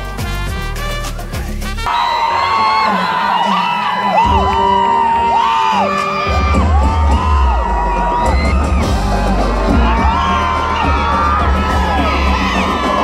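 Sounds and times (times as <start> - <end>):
deep bass line: 0.0 - 1.9, 6.3 - 13.0
live pop band with brass: 0.0 - 13.0
fans screaming and whooping: 1.2 - 13.0.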